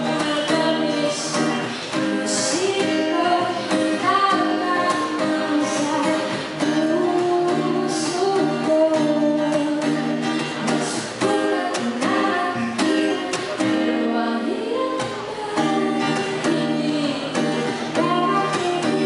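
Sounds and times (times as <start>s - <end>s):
strummed acoustic guitar: 0.0s - 19.0s
woman singing into a microphone: 0.0s - 19.0s.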